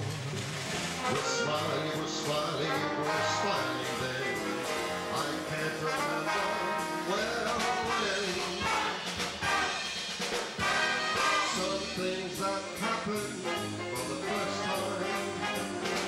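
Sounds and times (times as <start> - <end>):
big band playing: 0.0 - 16.0
man crooning into microphone: 1.0 - 8.7, 11.3 - 16.0.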